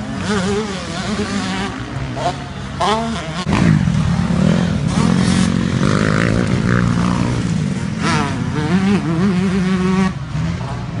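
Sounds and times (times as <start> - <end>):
motocross bike engine revving: 0.0 - 11.0.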